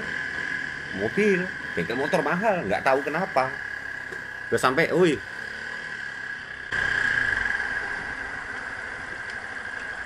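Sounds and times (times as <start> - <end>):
high whine: 0.0 - 10.0
motorcycle engine idling: 0.0 - 10.0.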